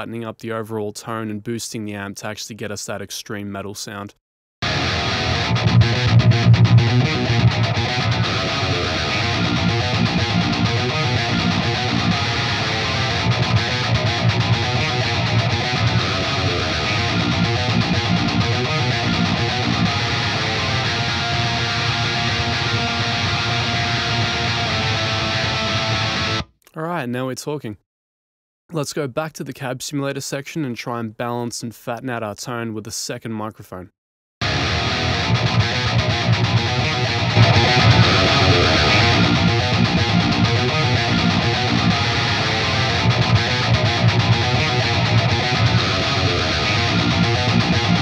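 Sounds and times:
distorted metal guitar riff: 0:04.6 - 0:26.5, 0:34.4 - 0:48.0.

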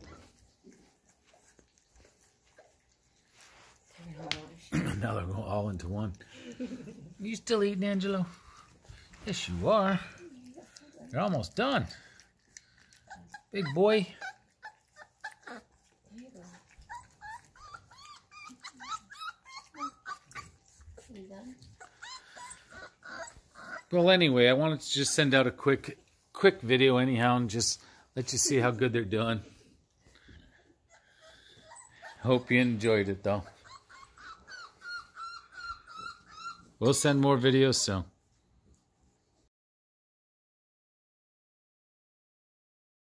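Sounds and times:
eating from steel bowls: 0:00.0 - 0:24.2
puppies whimpering: 0:05.5 - 0:26.2, 0:30.1 - 0:37.2.

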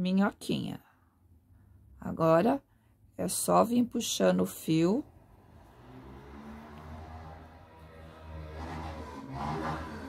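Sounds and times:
low motor hum: 0:05.0 - 0:10.0.

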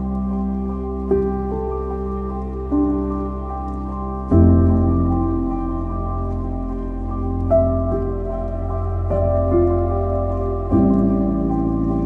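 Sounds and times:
soft slow keyboard music: 0:00.0 - 0:12.0.

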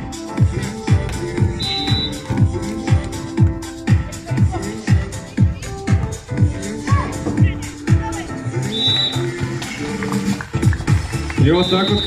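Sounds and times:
electronic dance music: 0:00.0 - 0:12.0
kick drum beat: 0:00.4 - 0:08.2.

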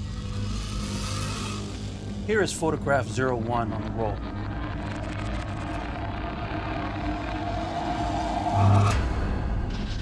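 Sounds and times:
dark low rumble: 0:00.0 - 0:10.0.

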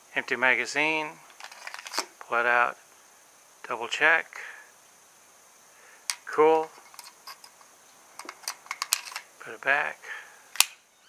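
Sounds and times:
pistol metal clicks: 0:10.5 - 0:10.8.

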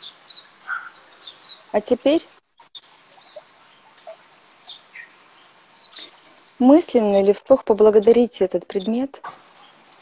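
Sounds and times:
high bird chirps: 0:00.0 - 0:07.4, 0:08.8 - 0:10.0
faint background hiss: 0:00.0 - 0:10.0.

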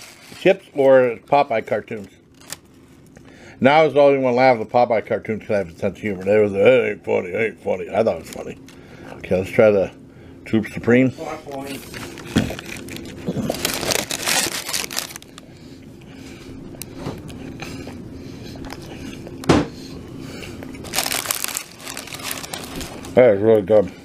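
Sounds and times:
paper wrappers crinkling: 0:00.0 - 0:03.2, 0:11.5 - 0:15.5, 0:20.4 - 0:23.3.

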